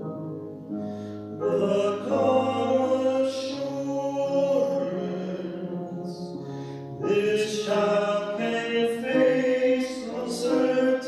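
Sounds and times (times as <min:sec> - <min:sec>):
piano accompaniment: 0:00.0 - 0:11.0
two men singing a duet: 0:01.4 - 0:06.4, 0:07.0 - 0:11.0.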